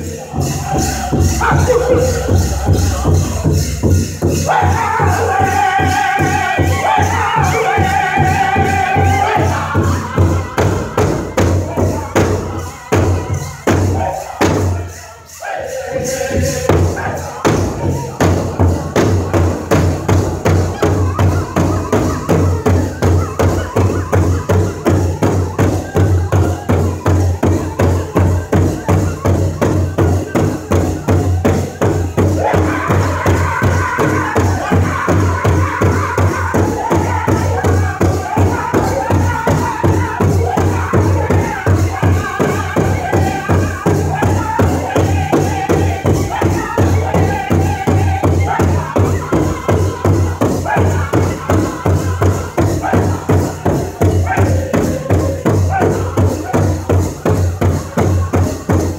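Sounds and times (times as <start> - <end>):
hand drum steady fast beat: 0.0 - 14.9, 16.3 - 58.9
men singing: 0.0 - 58.9.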